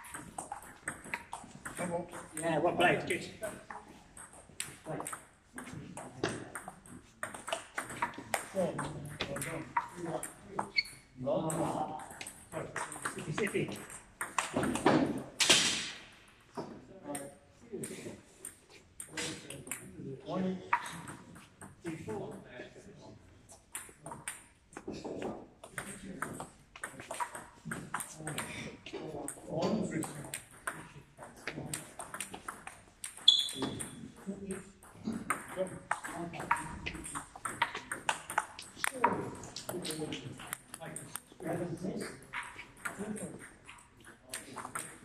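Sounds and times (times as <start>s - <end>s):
voices talking: 33.2s - 45.0s
table tennis ball clicks: 35.3s - 41.3s.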